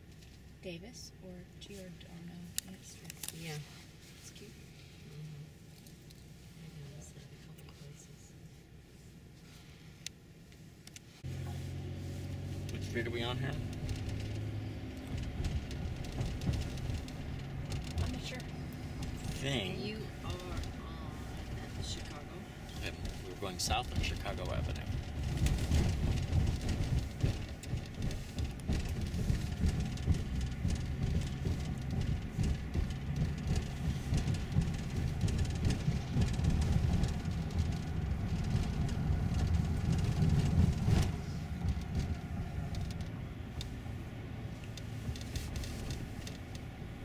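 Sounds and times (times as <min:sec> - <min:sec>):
car cabin road rumble: 0:00.0 - 0:47.0.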